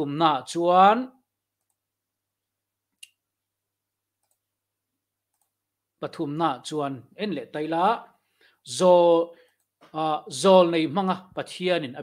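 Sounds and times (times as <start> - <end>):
man speaking: 0.0 - 1.2, 6.0 - 12.0.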